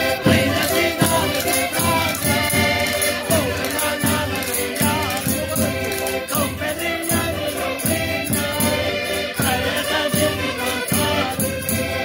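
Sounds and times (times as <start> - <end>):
button accordion playing chords: 0.0 - 12.0
man singing loudly: 0.2 - 8.6.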